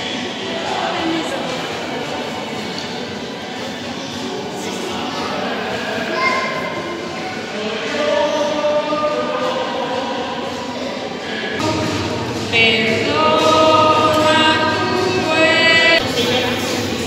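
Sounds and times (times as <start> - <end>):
voices singing a slow hymn: 4.5 - 17.0.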